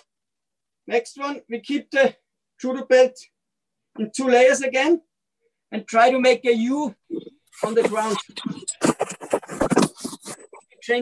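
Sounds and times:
scraping and rustling: 7.6s - 10.8s.

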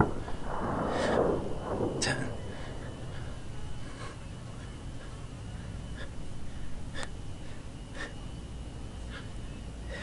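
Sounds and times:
low wind rumble on microphone: 0.0s - 7.9s.

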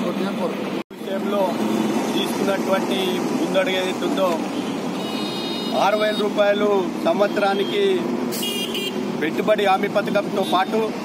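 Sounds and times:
man talking: 0.0s - 4.5s, 5.7s - 8.1s, 9.2s - 11.0s
street traffic: 0.0s - 11.0s
high-pitched vehicle horn toot: 4.6s - 6.4s, 8.4s - 9.0s.

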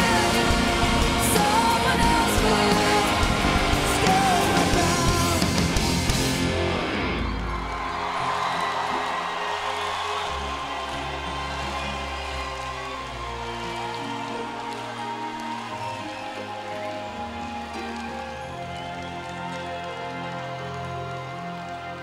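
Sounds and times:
crowd cheering and applauding: 0.0s - 22.0s.

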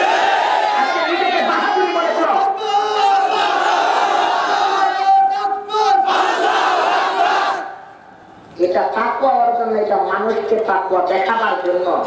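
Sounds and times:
crowd chanting: 0.0s - 7.9s.

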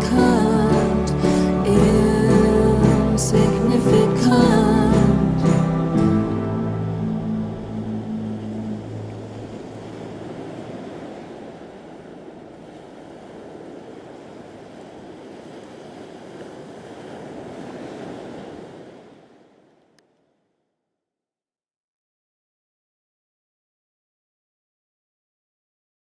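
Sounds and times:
sea surf washing: 0.0s - 20.0s.

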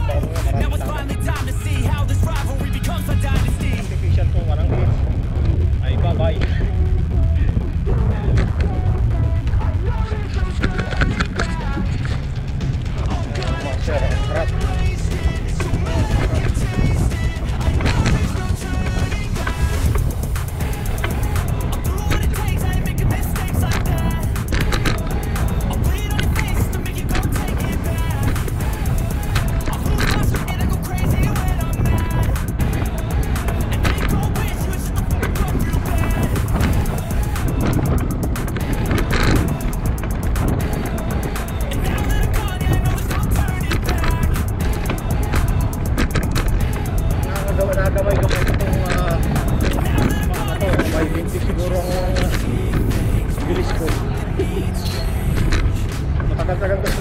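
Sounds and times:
music playing: 0.0s - 57.0s
wind rumble on microphone: 0.0s - 57.0s.

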